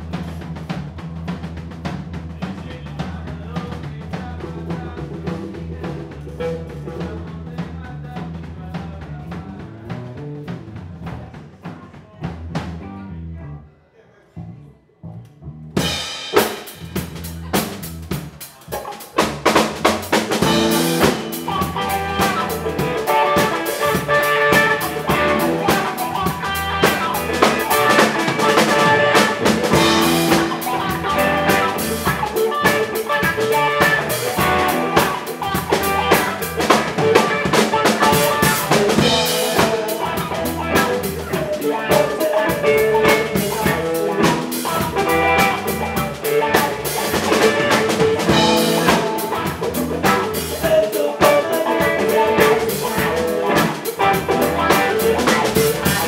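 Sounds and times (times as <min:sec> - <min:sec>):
live rock band playing: 0:00.0 - 0:12.9, 0:15.8 - 0:56.0.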